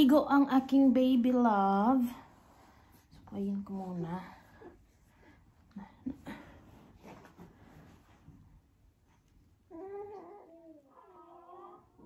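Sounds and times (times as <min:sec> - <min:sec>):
baby whining: 0:09.7 - 0:12.0.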